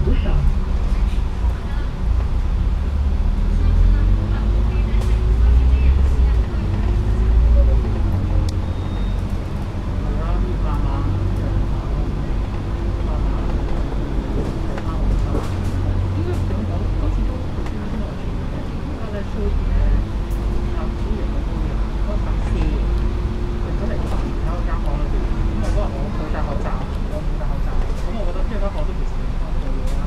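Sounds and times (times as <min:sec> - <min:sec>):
bus engine rumbling and whining: 0:00.0 - 0:30.0.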